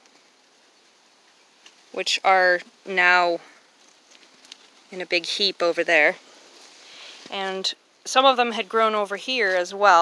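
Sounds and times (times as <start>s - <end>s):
person speaking: 1.9s - 3.6s, 4.9s - 6.3s, 6.9s - 10.0s.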